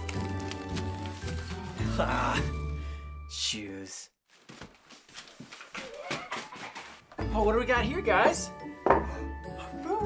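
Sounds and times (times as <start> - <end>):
shoes shuffling and knocking: 4.3 - 7.2.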